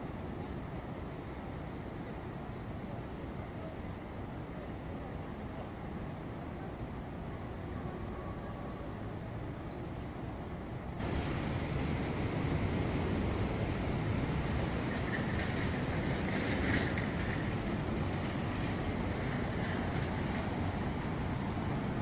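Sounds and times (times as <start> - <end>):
city street traffic rumble: 0.0 - 22.0.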